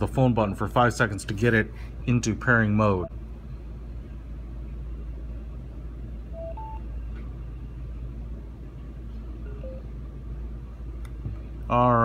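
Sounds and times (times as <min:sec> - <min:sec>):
steady low hum: 0:00.0 - 0:12.0
headphones rising two-note beep: 0:06.4 - 0:06.8.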